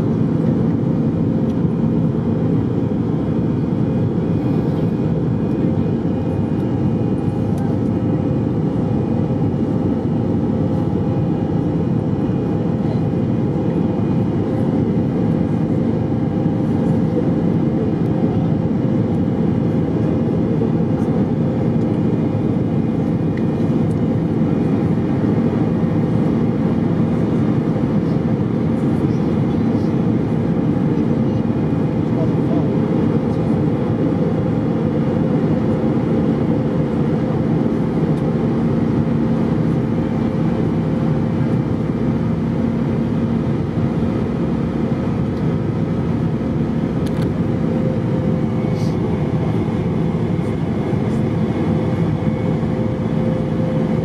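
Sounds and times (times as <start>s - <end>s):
airplane cabin engine drone: 0.0s - 54.0s.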